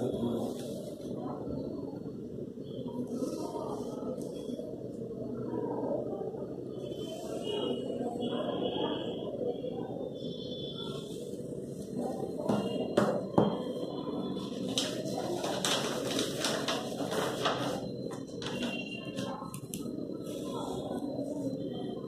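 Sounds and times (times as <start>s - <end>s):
low background murmur: 0.0s - 22.0s.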